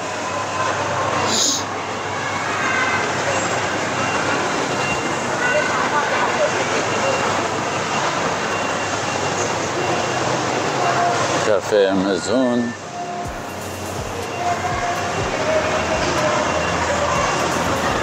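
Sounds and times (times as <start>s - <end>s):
faint distant voices: 0.0s - 18.0s
steady rushing hum: 12.7s - 18.0s.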